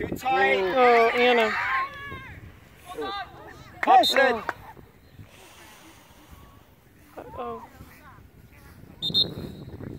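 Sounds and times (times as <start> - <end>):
faint distant voices: 0.4 - 9.5.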